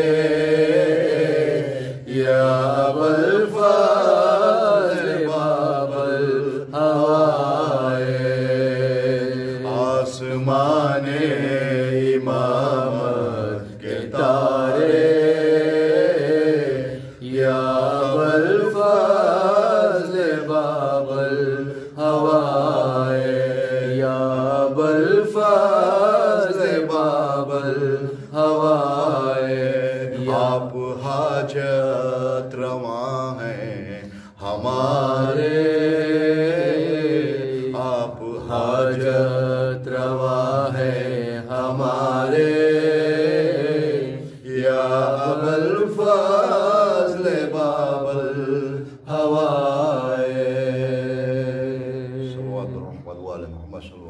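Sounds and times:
man singing devotional song: 0:00.0 - 0:54.0.

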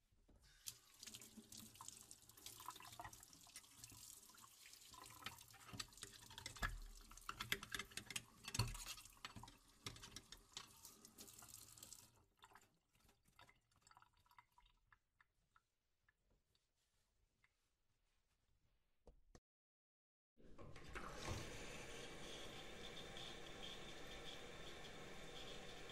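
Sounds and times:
water dripping: 0:00.5 - 0:16.2
tap water running into sink: 0:00.6 - 0:12.6.

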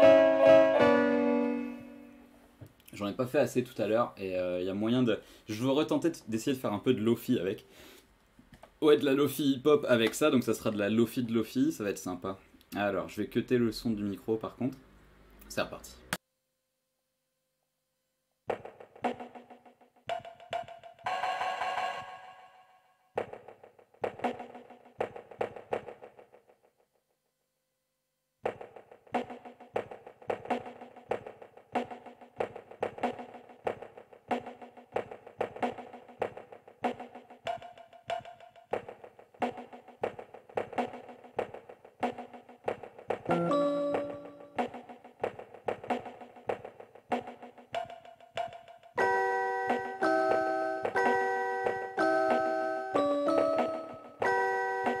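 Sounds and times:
electronic keyboard beat: 0:00.0 - 0:02.2, 0:28.5 - 0:55.0.

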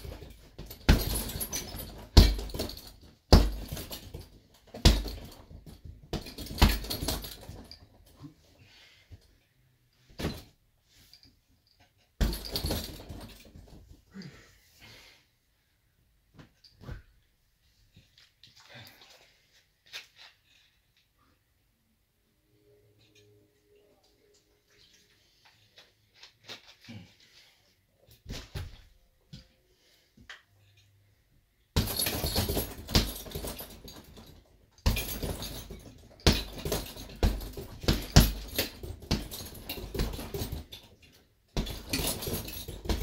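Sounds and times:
punch on heavy bag: 0:00.0 - 0:07.6, 0:12.2 - 0:13.3, 0:31.8 - 0:33.9, 0:34.8 - 0:40.7, 0:41.6 - 0:43.0
chain jingling and rattling: 0:00.0 - 0:08.2, 0:11.2 - 0:13.8, 0:31.8 - 0:43.0.

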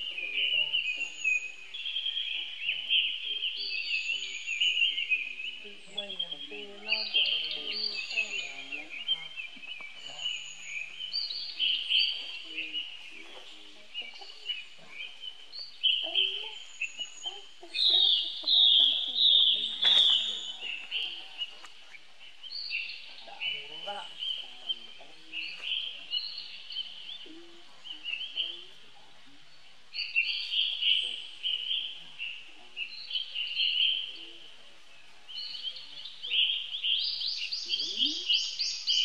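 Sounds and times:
high-pitched chirping calls: 0:00.0 - 0:29.1.

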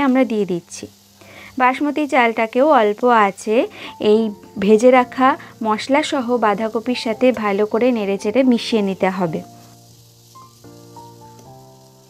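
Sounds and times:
food sizzling in a pan: 0:00.0 - 0:12.0
soft background music: 0:02.3 - 0:12.0.

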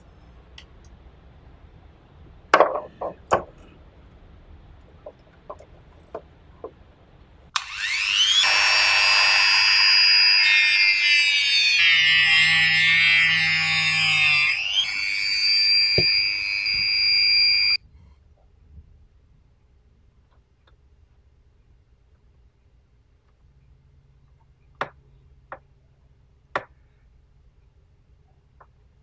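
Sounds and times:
rotary tool whining: 0:07.6 - 0:17.8.

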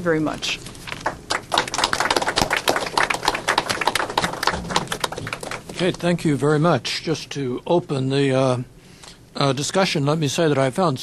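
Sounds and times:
audience applauding: 0:00.9 - 0:06.2.

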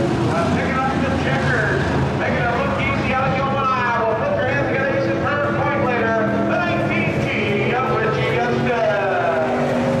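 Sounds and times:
race car engines running: 0:00.0 - 0:10.0.

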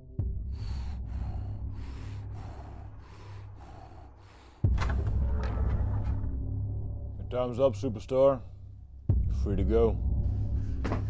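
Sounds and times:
low bass drone: 0:00.0 - 0:11.0.

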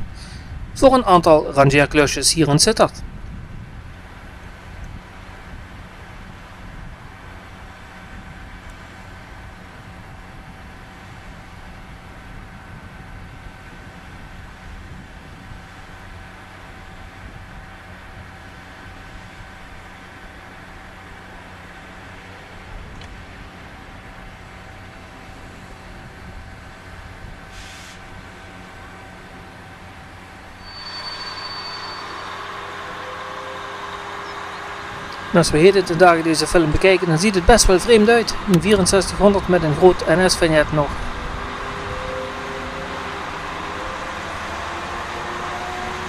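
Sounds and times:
diesel locomotive idling: 0:00.0 - 0:46.0.

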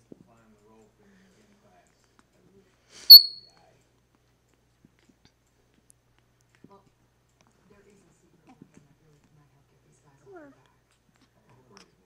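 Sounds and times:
parrot high-pitched whistle: 0:03.1 - 0:03.5.

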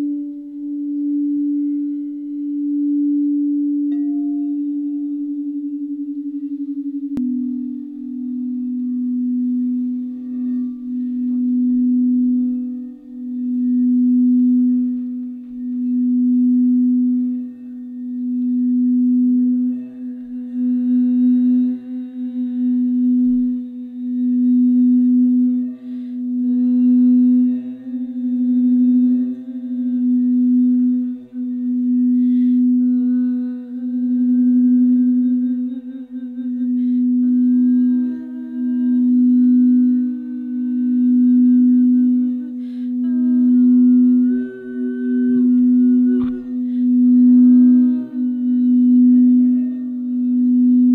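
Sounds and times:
higher singing bowl tones: 0:00.0 - 0:50.9
low singing bowl tone: 0:00.0 - 0:50.9.

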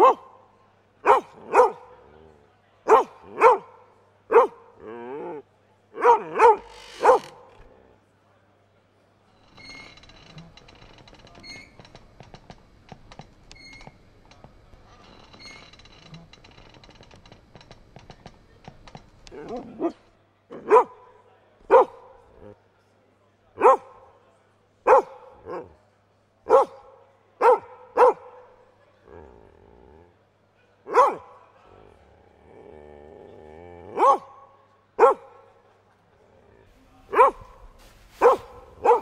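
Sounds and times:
short dog barks: 0:01.0 - 0:01.8, 0:06.0 - 0:07.3, 0:30.9 - 0:31.3, 0:37.1 - 0:37.6, 0:38.2 - 0:39.0.

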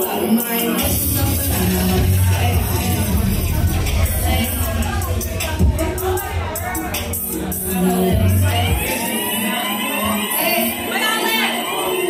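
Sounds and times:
amplified live club music: 0:00.0 - 0:12.0.

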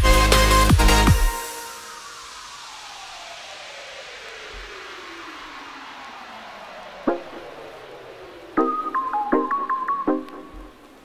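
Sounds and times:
falling white-noise sweep: 0:01.3 - 0:11.0.

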